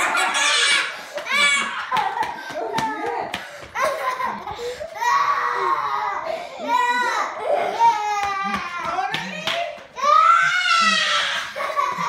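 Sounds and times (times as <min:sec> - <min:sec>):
people laughing: 0:00.0 - 0:04.8, 0:11.2 - 0:12.0.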